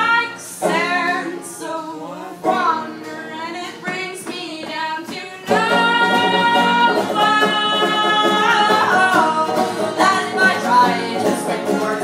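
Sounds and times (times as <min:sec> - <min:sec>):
acoustic guitar: 0:00.0 - 0:12.0
banjo: 0:00.0 - 0:12.0
women singing: 0:00.0 - 0:12.0.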